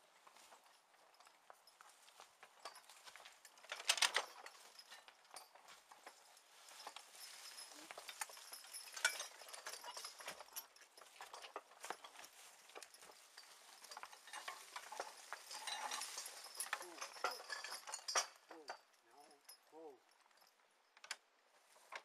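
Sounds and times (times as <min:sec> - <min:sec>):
soil rustling: 0:00.0 - 0:18.7
hoof steps: 0:00.0 - 0:20.7
plow ironwork and harness clinking: 0:00.0 - 0:22.0.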